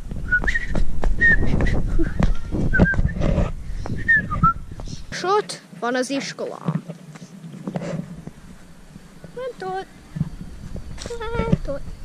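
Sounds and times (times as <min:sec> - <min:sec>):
wind rumble on camera microphone: 0:00.0 - 0:05.2, 0:07.6 - 0:12.0.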